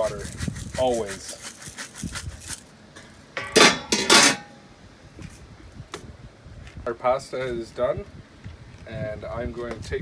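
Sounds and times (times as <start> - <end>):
metallic clanks of cookware: 3.4 - 4.6.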